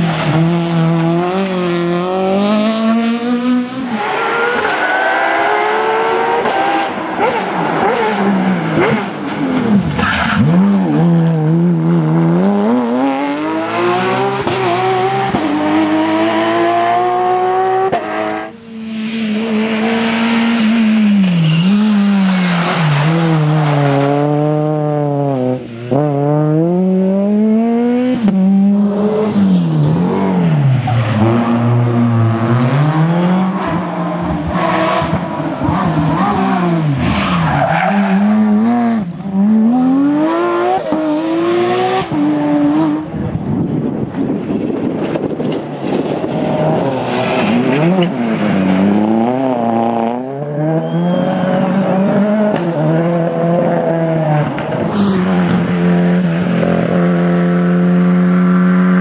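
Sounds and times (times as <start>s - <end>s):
rally car engines at full throttle: 0.0s - 59.0s.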